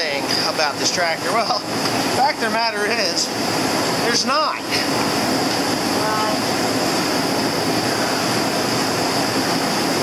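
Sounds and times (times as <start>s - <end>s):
space heater rushing and hissing: 0.0s - 10.0s.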